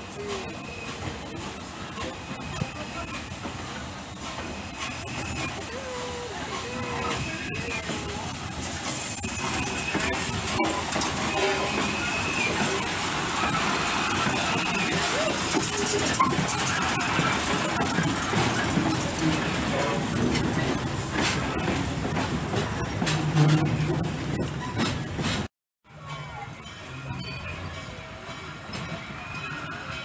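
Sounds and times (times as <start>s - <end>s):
steam locomotive rolling past: 0.0s - 30.0s
wheels on rails: 0.0s - 30.0s.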